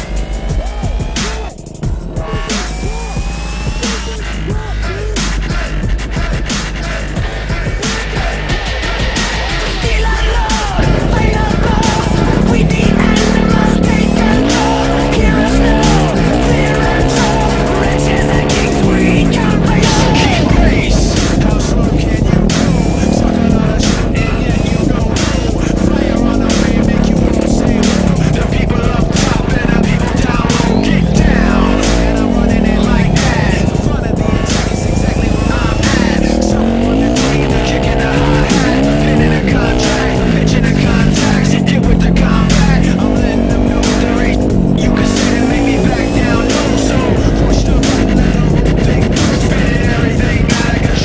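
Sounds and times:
dirt bike engine revving: 0.0s - 51.0s
music: 0.0s - 51.0s.

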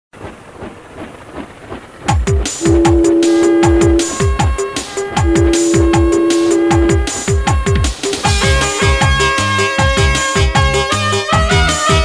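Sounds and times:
train running on rails: 0.2s - 12.0s
rhythmic rail clack: 0.4s - 10.8s.

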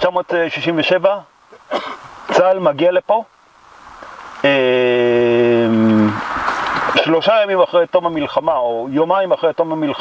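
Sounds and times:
man's hesitation vowel: 4.6s - 6.2s
short hiss: 5.4s - 7.0s.

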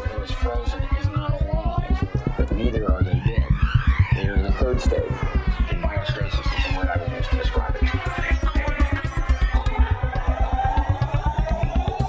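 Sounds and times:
pulsing bass line: 0.0s - 12.0s
sustained synth tone: 0.0s - 12.0s.

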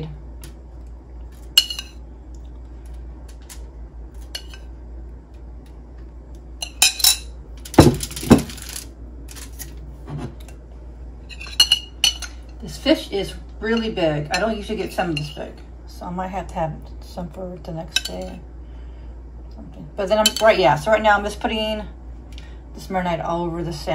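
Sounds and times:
metal spoon clinking on ceramic bowl: 1.6s - 2.0s, 11.3s - 12.6s.

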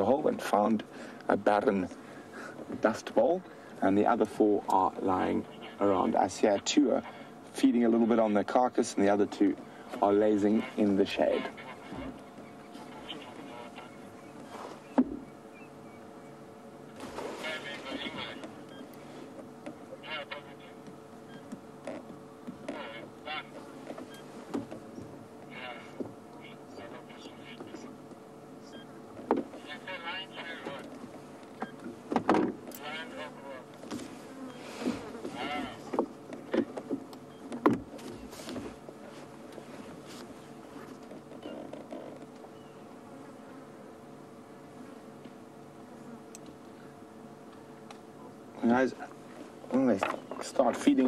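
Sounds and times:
steady low hum: 0.0s - 51.0s.

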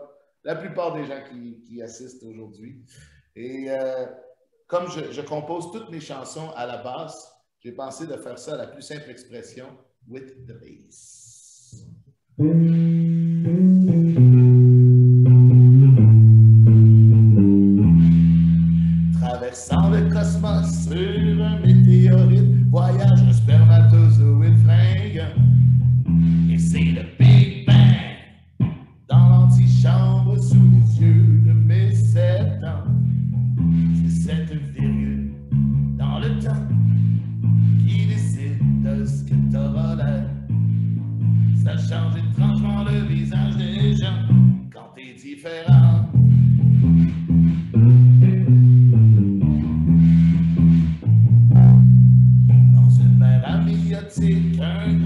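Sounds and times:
electric bass guitar line: 11.7s - 44.7s, 45.7s - 55.0s
man singing: 19.2s - 25.4s, 26.5s - 28.3s, 29.1s - 33.0s, 34.1s - 35.3s, 36.0s - 36.7s, 41.6s - 44.3s, 52.8s - 55.0s.

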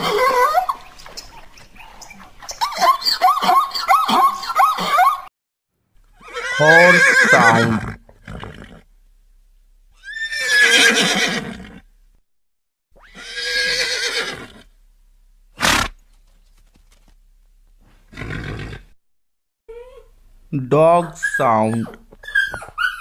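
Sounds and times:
horse whinnying: 3.2s - 5.3s, 6.1s - 8.9s, 10.0s - 11.9s, 13.0s - 14.7s, 18.1s - 19.0s.

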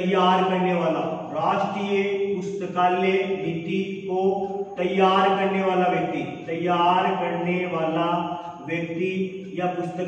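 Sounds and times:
man chanting held syllables: 0.0s - 10.0s.

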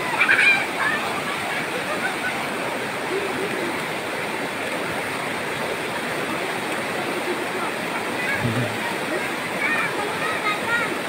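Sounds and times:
river water rushing over rocks: 0.0s - 11.0s.

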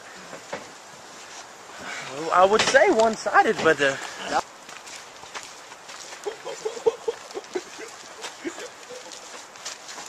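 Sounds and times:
person laughing: 6.2s - 9.4s.

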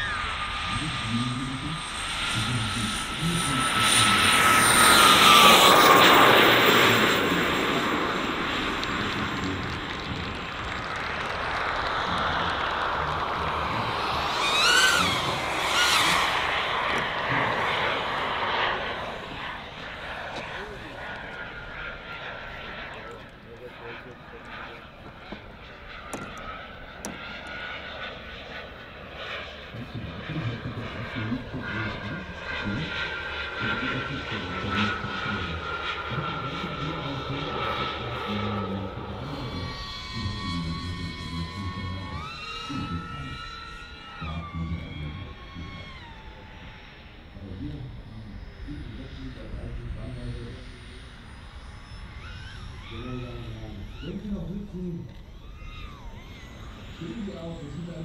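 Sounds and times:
jet turbine high whine: 0.0s - 58.0s
model jet turbines rushing: 0.0s - 58.0s.

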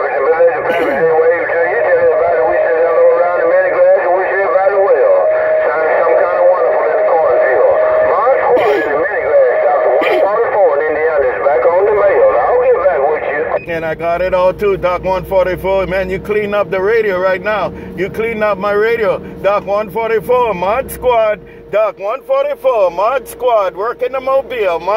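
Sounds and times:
radio-filtered voice: 0.0s - 24.9s
steady radio whistle: 0.0s - 24.9s.

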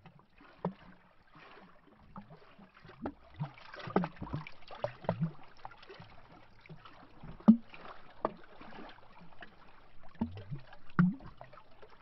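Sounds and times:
water lapping against tree trunk: 0.3s - 12.0s.

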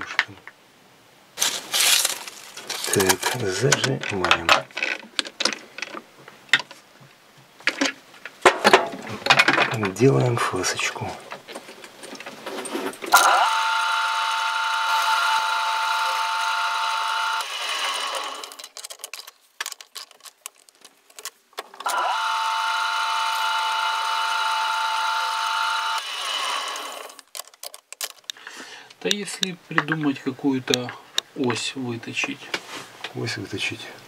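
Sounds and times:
light clicks and handling noises: 1.4s - 13.1s, 18.5s - 21.9s, 27.2s - 33.3s
metal lathe whining: 13.1s - 18.6s, 21.8s - 27.2s.

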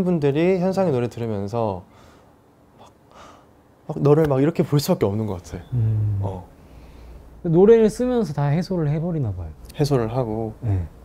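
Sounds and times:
man's intake of breath: 3.1s - 3.5s, 5.8s - 7.4s.

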